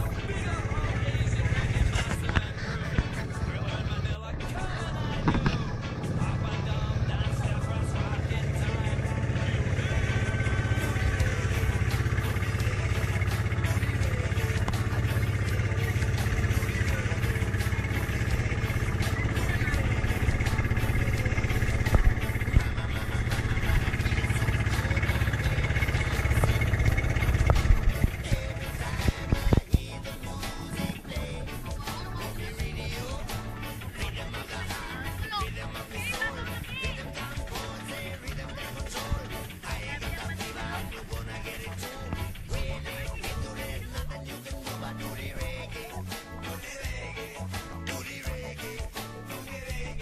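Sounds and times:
boat engine running: 0.0 - 50.0.

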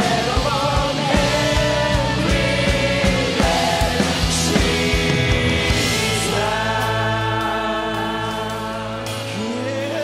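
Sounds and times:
worship band sustained chord: 0.0 - 10.0.

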